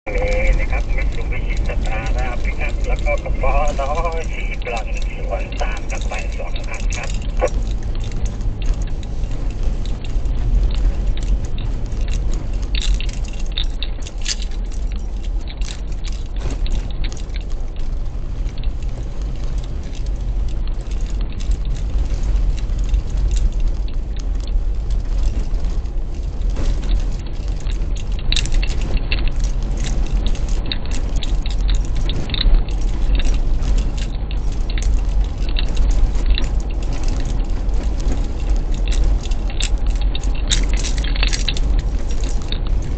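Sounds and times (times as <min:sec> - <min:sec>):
car road and engine rumble: 0:00.0 - 0:42.9
small rattles and clicks: 0:00.1 - 0:42.9.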